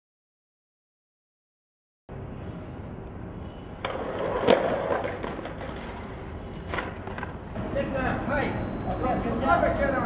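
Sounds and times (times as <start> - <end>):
skateboard wheels rolling on concrete: 2.8 - 10.0
loud skateboard clack: 3.8 - 7.4.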